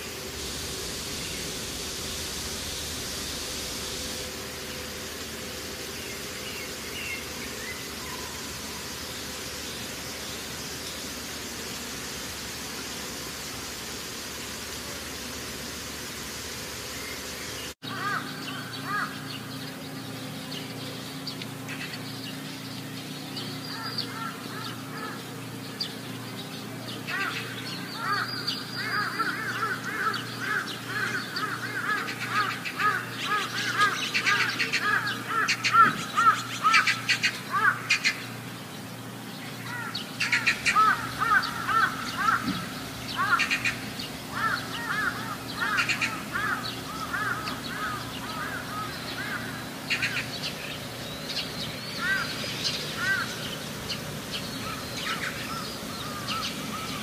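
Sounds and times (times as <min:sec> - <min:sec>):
birds calling in quick notes: 0:00.0 - 0:57.0
steady low hum: 0:00.0 - 0:57.0.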